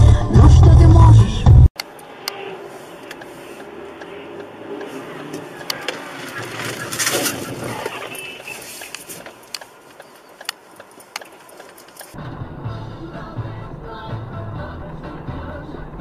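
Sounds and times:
wind and road noise: 0:01.2 - 0:16.0
scattered clicks: 0:01.8 - 0:02.4, 0:03.0 - 0:12.2.

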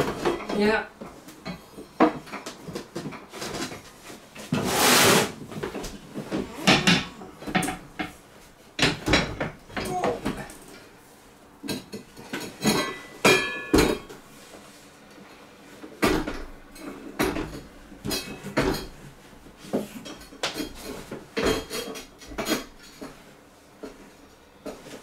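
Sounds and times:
knocks and clatters with ringing: 0:11.7 - 0:14.1.

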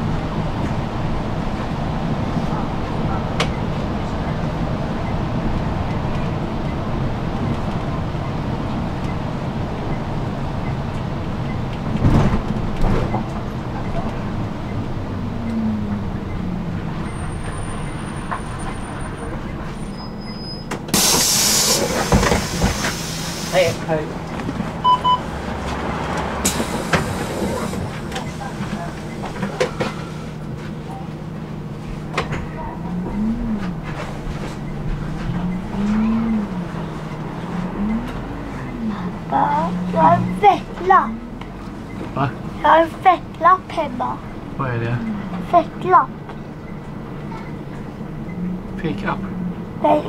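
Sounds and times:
bus engine and road rumble: 0:00.0 - 0:50.0
compressed air hiss: 0:21.0 - 0:23.8
short beep: 0:24.8 - 0:25.3.

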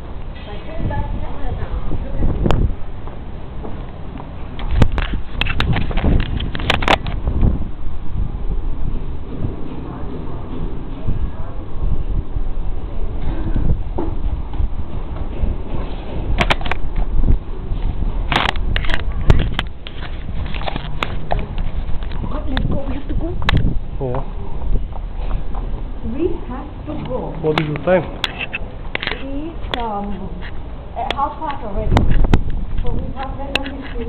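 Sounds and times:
low rumble: 0:00.0 - 0:27.4.

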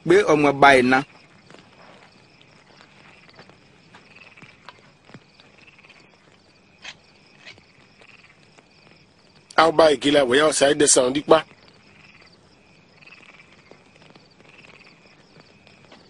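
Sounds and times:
crickets trilling: 0:00.0 - 0:16.0
soft taps and rustles: 0:01.2 - 0:09.6, 0:13.4 - 0:16.0.

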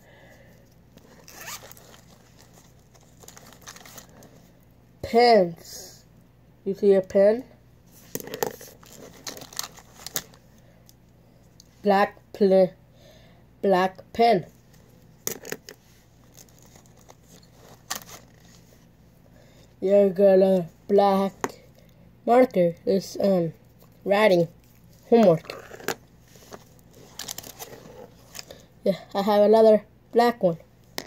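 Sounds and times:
zipper pulled open: 0:01.1 - 0:02.0, 0:25.4 - 0:26.0.

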